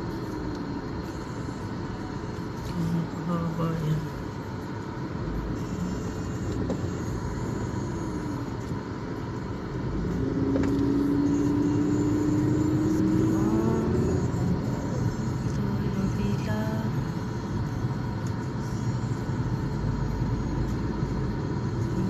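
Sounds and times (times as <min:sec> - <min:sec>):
car engine: 0:00.0 - 0:22.0
road rumble: 0:00.0 - 0:22.0.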